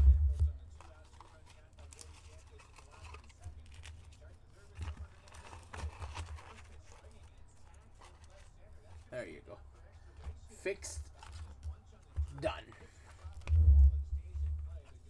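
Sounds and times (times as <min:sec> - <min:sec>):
plastic sleeves rustling: 0:00.0 - 0:09.1.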